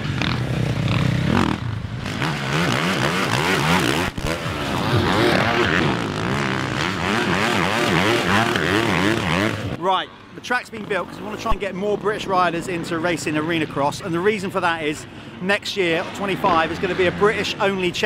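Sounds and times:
motocross bike engines revving: 0.0 - 9.8, 10.6 - 18.0.

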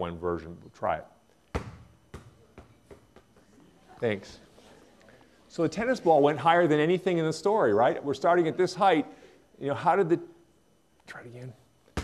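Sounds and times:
ball bouncing on hard floor: 1.5 - 3.5.

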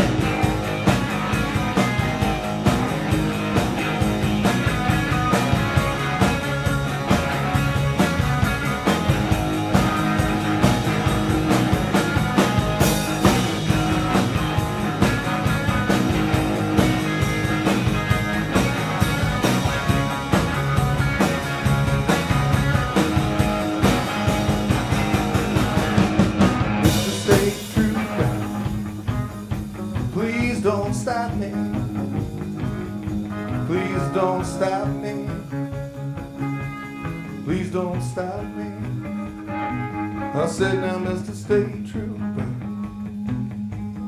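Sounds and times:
live rock band playing: 0.0 - 44.0.

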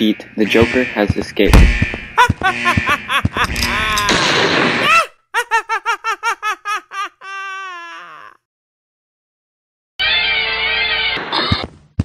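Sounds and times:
man laughing: 2.2 - 4.2, 4.8 - 8.4.

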